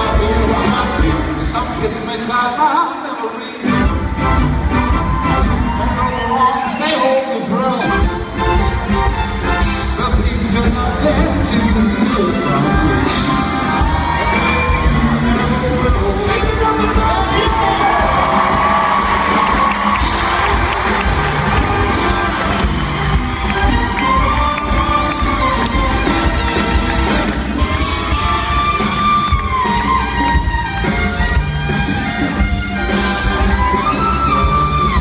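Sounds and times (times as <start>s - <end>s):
big band swing music: 0.0s - 35.0s
crowd cheering and whooping: 4.0s - 7.4s, 12.7s - 15.9s, 17.1s - 30.4s.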